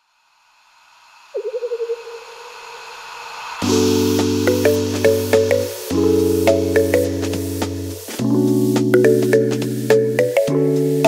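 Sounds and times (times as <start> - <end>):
hiss: 0.0 - 8.2.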